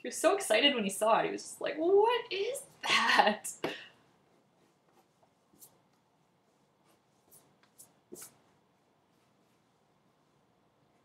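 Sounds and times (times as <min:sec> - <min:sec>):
pencil scratching on paper: 0:04.2 - 0:10.2.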